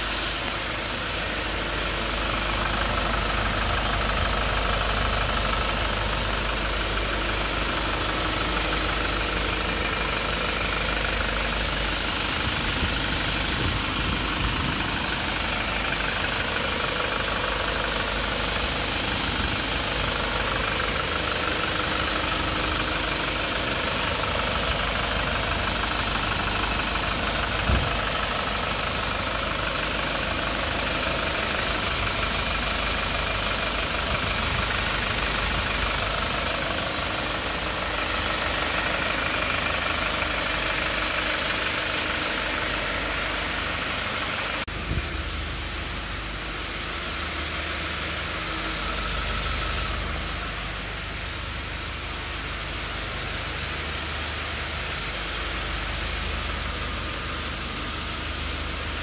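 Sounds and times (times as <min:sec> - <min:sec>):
car engine idling: 0:00.0 - 0:59.0.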